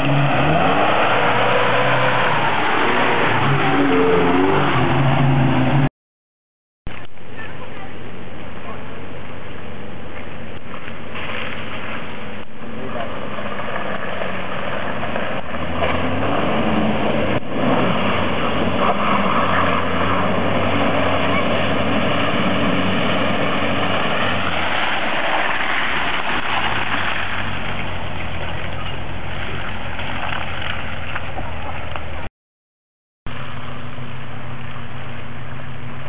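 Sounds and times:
engine revving hard in mud: 0.0s - 5.9s, 12.7s - 30.8s.

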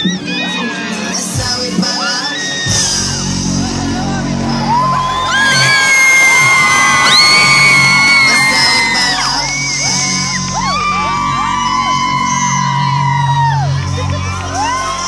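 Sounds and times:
band music playing low: 0.0s - 15.0s
crowd screaming and whooping: 0.0s - 15.0s.

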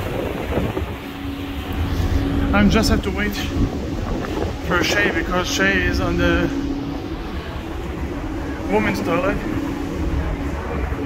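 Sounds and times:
low engine rumble: 0.0s - 11.0s
steady low hum: 0.0s - 11.0s
wind on microphone: 0.0s - 11.0s.

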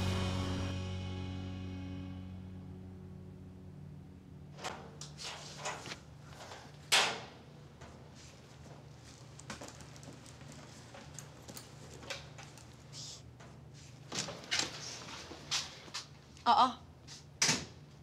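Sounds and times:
low room hum: 0.0s - 18.0s
metal locker door clanking: 6.9s - 7.4s.

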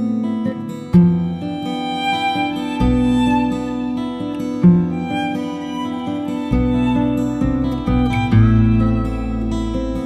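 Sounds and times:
plucked acoustic guitar: 0.0s - 10.0s
violin playing: 1.2s - 9.8s.

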